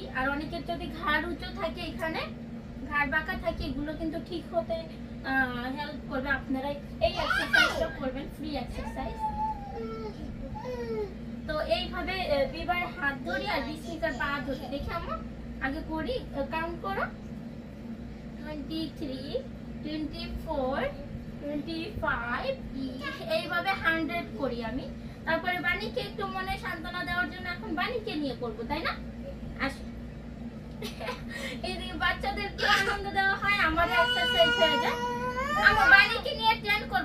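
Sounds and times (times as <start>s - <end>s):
young children vocalizing and chattering: 7.0s - 11.3s, 12.2s - 15.3s, 22.8s - 23.8s, 32.5s - 36.6s
high-pitched child vocalization: 8.8s - 11.2s.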